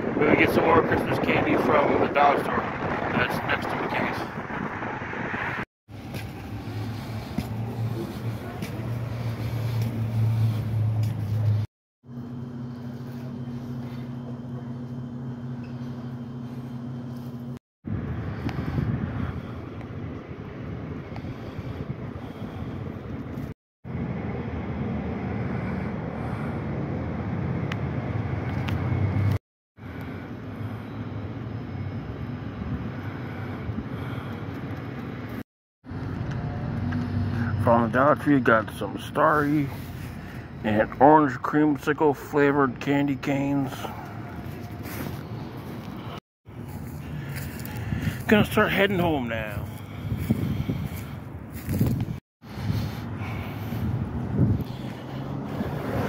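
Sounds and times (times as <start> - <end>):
low mechanical motor hum: 6.0 - 37.4, 43.8 - 48.4, 49.6 - 56.0.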